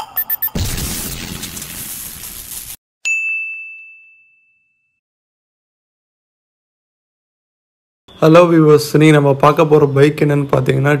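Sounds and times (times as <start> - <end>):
notification ding: 0.0 - 0.6, 3.1 - 4.9.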